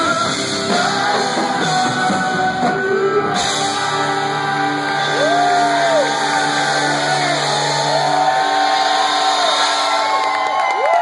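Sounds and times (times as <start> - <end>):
audience cheering and shouting: 0.0 - 11.0.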